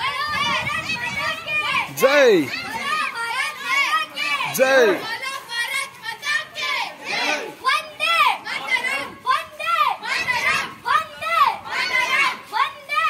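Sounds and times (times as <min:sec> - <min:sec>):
children chanting in unison: 0:02.6 - 0:13.0.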